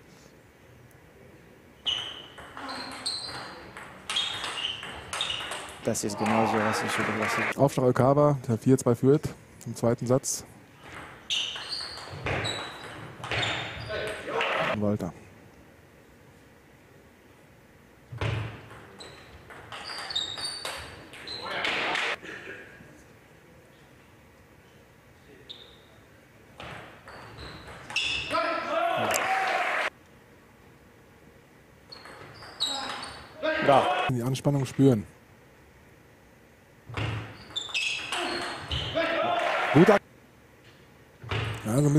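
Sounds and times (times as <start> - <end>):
shoes squeaking on floor: 1.8 - 5.8, 10.8 - 14.8, 18.9 - 22.1, 25.4 - 26.0, 27.0 - 28.4, 31.9 - 33.4, 37.0 - 39.2
crowd cheering and shouting: 6.2 - 7.5, 28.3 - 29.9, 39.0 - 40.0.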